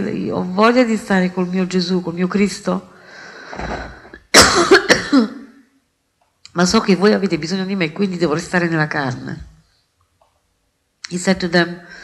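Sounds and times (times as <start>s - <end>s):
person breathing in: 3.0s - 4.2s
person coughing loudly: 3.6s - 5.5s.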